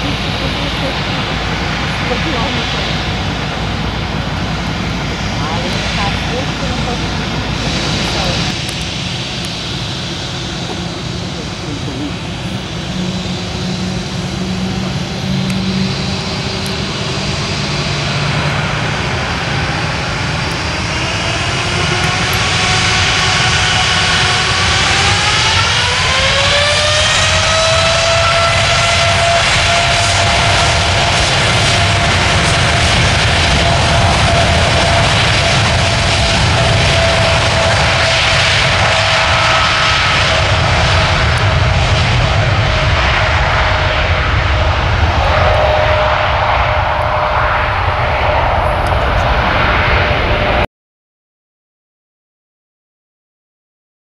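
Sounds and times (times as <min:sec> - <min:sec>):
jet engines rushing: 0:00.0 - 0:50.7
rising turbine whine: 0:00.0 - 0:50.7.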